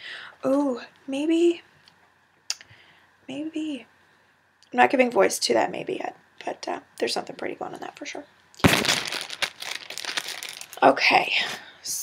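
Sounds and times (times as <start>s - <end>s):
plastic packaging crinkling: 8.6s - 11.0s.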